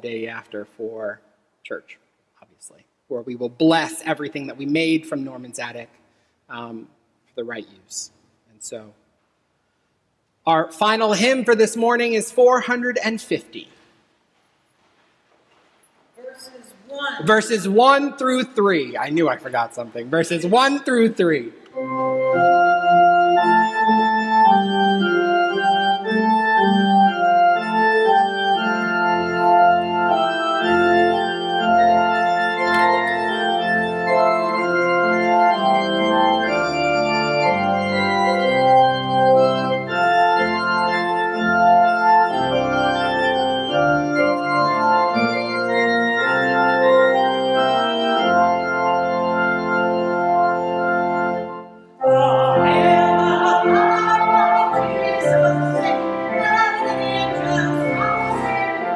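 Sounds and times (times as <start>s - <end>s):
church pipe organ chords: 17.2s - 58.9s
deep organ pedal bass notes: 21.8s - 58.9s.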